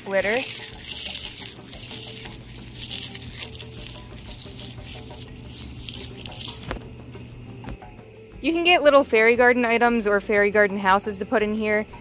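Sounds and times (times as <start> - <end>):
dry leaves crackling and rustling: 0.0 - 6.9.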